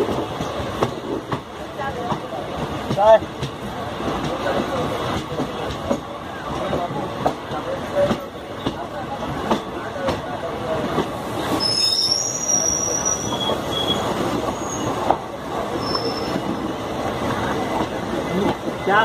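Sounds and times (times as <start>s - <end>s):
rail-joint clacks: 0.0s - 19.0s
train wheels rumbling on rail: 0.0s - 19.0s
high-pitched wheel squeals: 11.6s - 15.0s, 15.7s - 16.6s.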